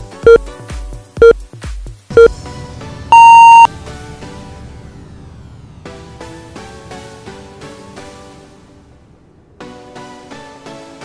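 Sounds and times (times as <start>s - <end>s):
long timer beep: 3.1s - 3.7s
short countdown beeps: 3.1s - 3.7s.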